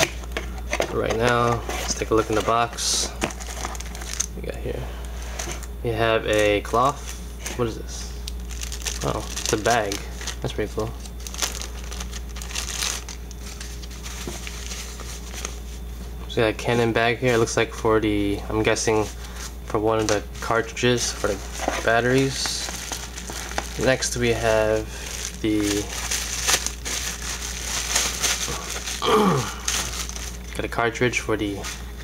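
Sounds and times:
plastic wrapping crinkling: 0.0s - 4.3s, 8.2s - 15.8s, 18.6s - 30.6s.

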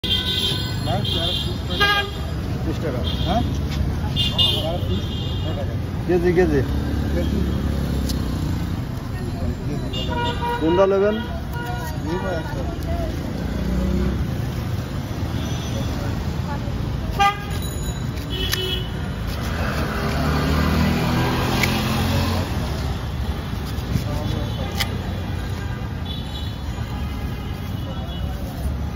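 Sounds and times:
street traffic: 0.0s - 28.9s
vehicle horns tooting: 9.8s - 12.4s, 17.1s - 19.1s.

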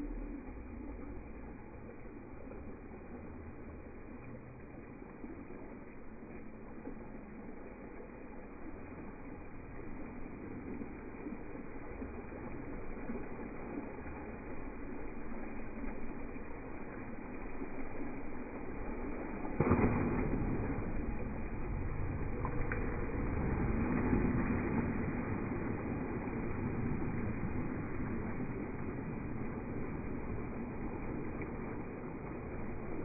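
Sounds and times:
waterfall splashing into pool: 0.0s - 33.0s.

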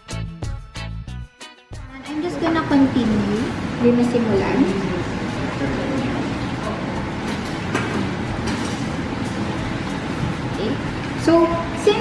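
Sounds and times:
steady rushing fan noise: 1.8s - 12.0s.

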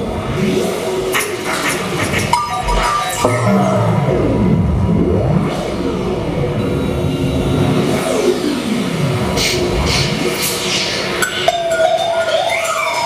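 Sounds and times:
electronic noise music: 0.0s - 13.0s
low rumble: 2.0s - 10.3s.

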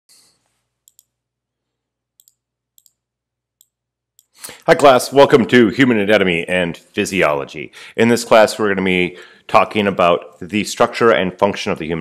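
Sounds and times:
computer mouse clicks: 0.8s - 1.2s, 2.2s - 3.0s.

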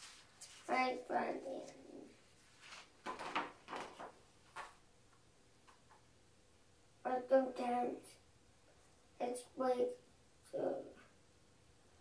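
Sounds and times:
book page turning: 2.4s - 4.8s.

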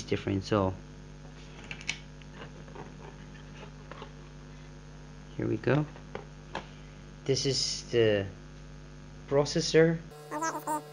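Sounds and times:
low electrical hum: 0.0s - 10.9s.

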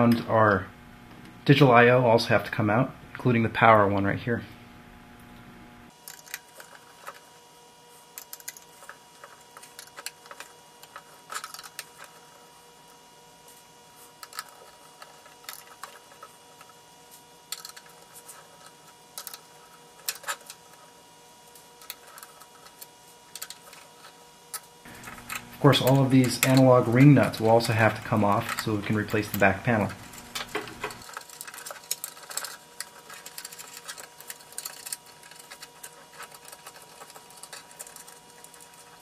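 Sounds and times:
faint steady hum: 0.0s - 39.0s
screwdriver clicking on screws: 21.8s - 39.0s.

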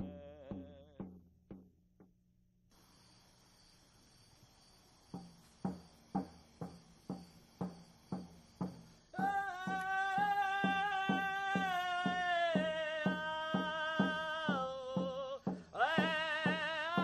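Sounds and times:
drum beating steadily: 5.1s - 17.0s.

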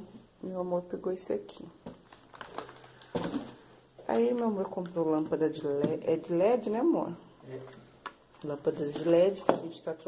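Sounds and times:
plastic shrink-wrap crinkling: 1.9s - 3.7s.

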